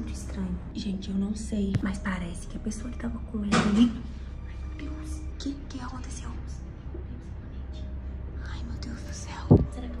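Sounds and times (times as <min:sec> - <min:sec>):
steady low hum: 0:00.0 - 0:10.0
loud low thump: 0:09.5 - 0:09.7.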